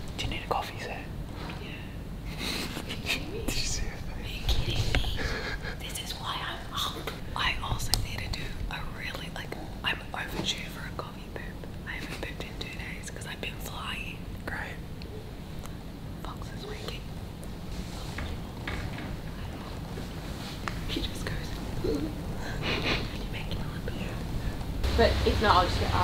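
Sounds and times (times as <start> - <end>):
man and woman whispering: 0.2 - 1.9, 2.9 - 15.0, 16.2 - 17.2, 20.8 - 24.7.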